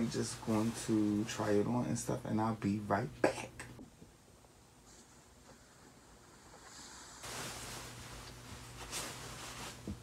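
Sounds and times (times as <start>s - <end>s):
clothing rustling: 6.5s - 10.0s.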